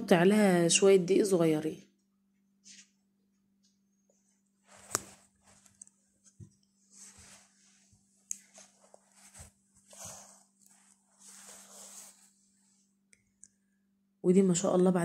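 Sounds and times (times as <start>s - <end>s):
dough rubbing and squishing: 4.6s - 13.0s.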